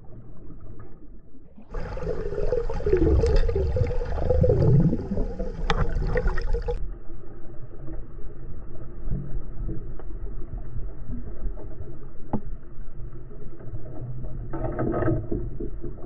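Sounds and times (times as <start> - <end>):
dull water rush: 0.0 - 16.0
underwater water noise: 0.0 - 16.0.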